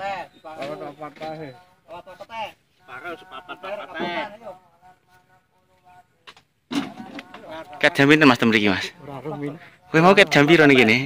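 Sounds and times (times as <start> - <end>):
people talking: 0.0 - 6.3, 7.0 - 11.0.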